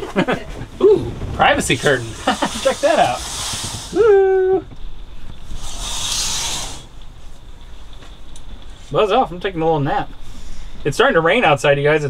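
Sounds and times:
fabric curtain swishing: 1.3 - 4.0, 5.6 - 6.9.

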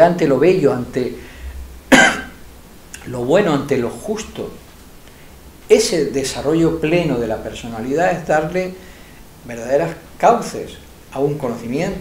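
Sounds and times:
short cough: 1.9 - 2.4.

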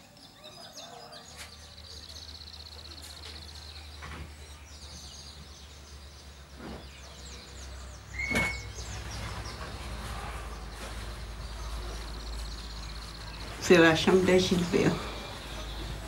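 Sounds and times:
birds chirping: 0.0 - 16.0
brief squeak: 8.2 - 8.8.

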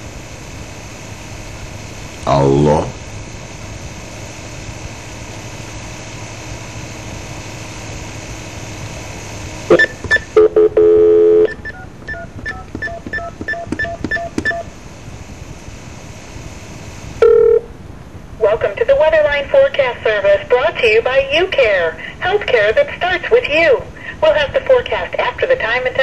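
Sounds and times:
telephone line hiss: 0.0 - 17.7
steady dial tone: 3.5 - 17.8
short call connect tone: 9.7 - 14.7, 17.2 - 17.7
touch-tone dialing beeps: 9.7 - 14.7.

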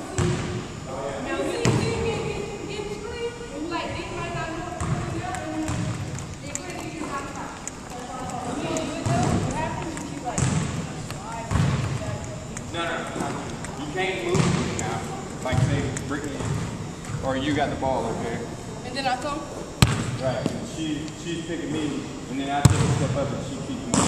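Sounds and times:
students chattering: 0.7 - 16.2
basketball bouncing on hardwood: 4.8 - 6.8, 9.0 - 12.1, 14.3 - 14.8, 15.5 - 15.8, 19.8 - 20.1.

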